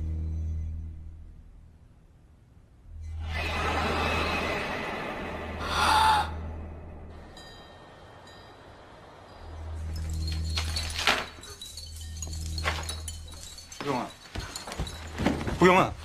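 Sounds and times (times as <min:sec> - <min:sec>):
low rumbling drone: 0:00.0 - 0:11.0.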